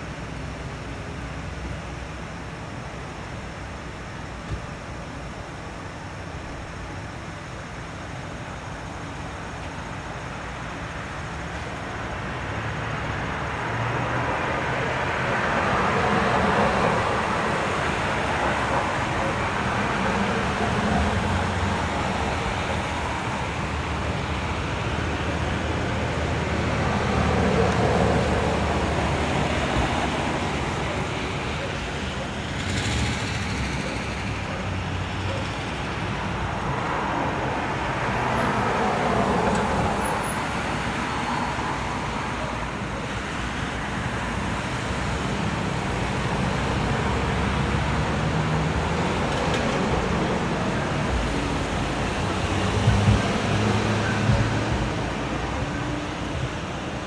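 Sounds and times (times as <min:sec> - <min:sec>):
cars passing: 0:09.9 - 0:57.0.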